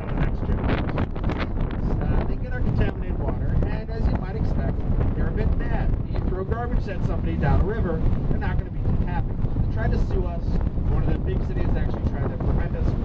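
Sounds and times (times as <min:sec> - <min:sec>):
boat engine drone: 0:00.0 - 0:13.0
wind rumbling on microphone: 0:00.0 - 0:13.0.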